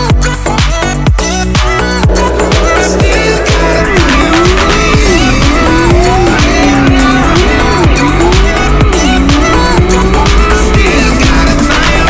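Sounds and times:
background music with steady beat: 0.0s - 12.0s
small engine revving: 1.6s - 12.0s.

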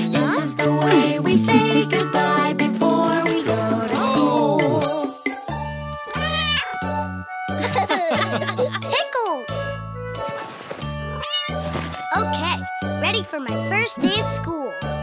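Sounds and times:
upbeat cartoon music: 0.0s - 15.0s
kitten meowing: 6.1s - 6.8s, 11.2s - 11.7s
cartoon child's voice: 8.8s - 9.8s, 12.1s - 14.9s.

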